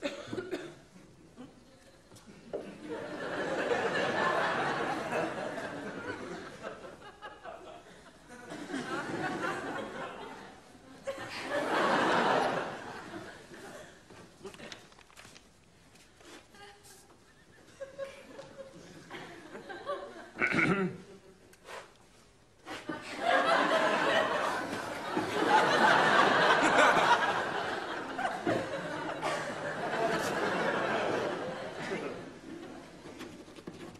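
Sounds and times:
person coughing: 0:00.0 - 0:00.9, 0:20.4 - 0:21.1
studio audience laughter: 0:02.7 - 0:13.6, 0:22.8 - 0:32.9.

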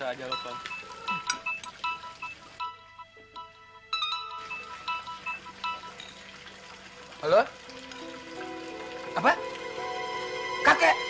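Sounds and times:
mobile phone ringtone: 0:00.3 - 0:06.0.

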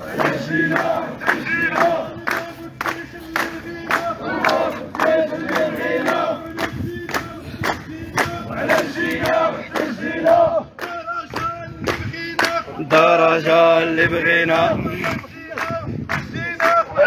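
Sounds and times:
crowd chanting: 0:00.0 - 0:17.0
rhythmic hand clapping: 0:00.0 - 0:17.0.

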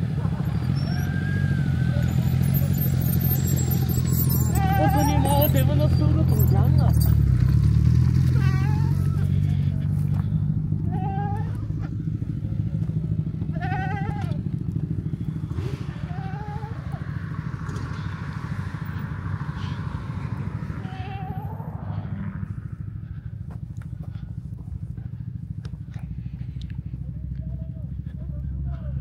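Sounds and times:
vehicle engine humming: 0:00.0 - 0:29.0.

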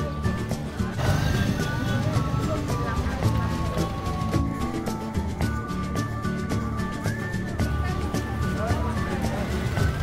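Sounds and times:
background music with pulsing beat: 0:00.0 - 0:10.0.

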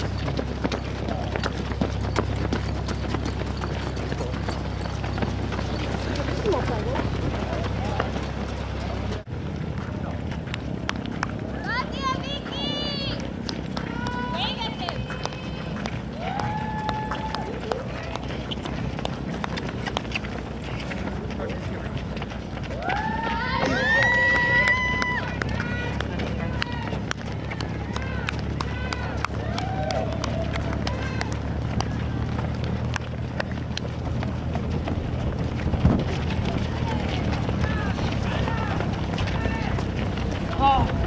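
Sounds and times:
runners' footsteps on asphalt: 0:00.0 - 0:41.0
people calling out: 0:11.6 - 0:18.5, 0:22.7 - 0:32.5, 0:36.2 - 0:41.0
loud held shout: 0:22.8 - 0:27.0, 0:27.6 - 0:32.2, 0:36.8 - 0:39.8
steady low rumble: 0:24.9 - 0:41.0.

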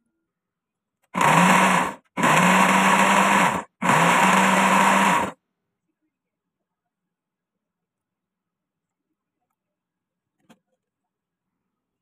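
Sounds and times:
electric blender motor running: 0:01.2 - 0:05.4.

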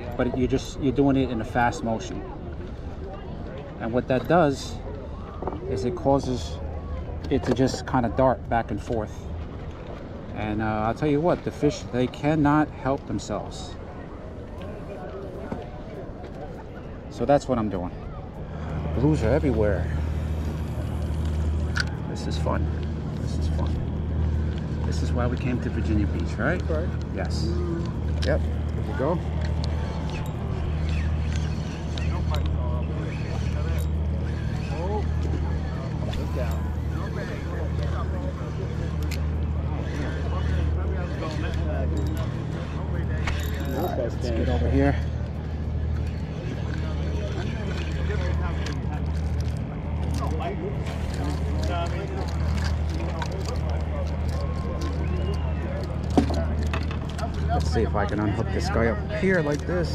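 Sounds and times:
distant chatter of people: 0:00.0 - 0:59.9
steady low rumble: 0:18.0 - 0:59.9
fishing reel cranking: 0:23.4 - 0:59.9.

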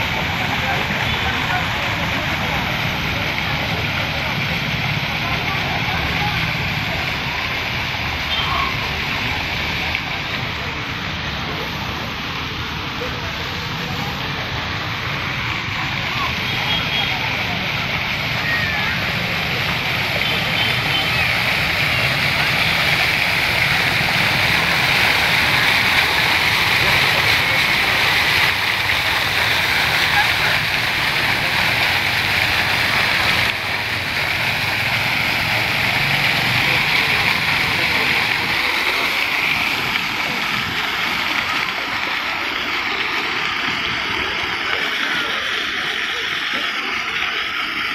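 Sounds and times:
faint voices: 0:00.0 - 0:47.9
fountain water rushing: 0:00.0 - 0:47.9.

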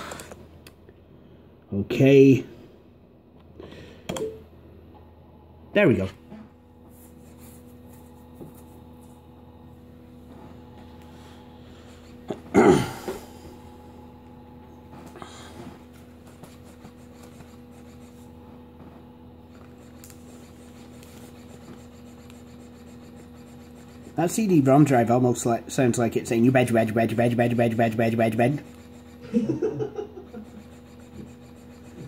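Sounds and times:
cd drive humming: 0:07.6 - 0:32.0.

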